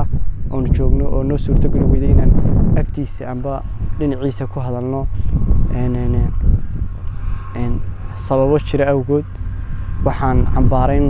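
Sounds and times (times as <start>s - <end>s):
young man speaking: 0.0s - 6.4s, 7.5s - 9.3s, 10.0s - 11.0s
low microphone rumble: 0.0s - 11.0s.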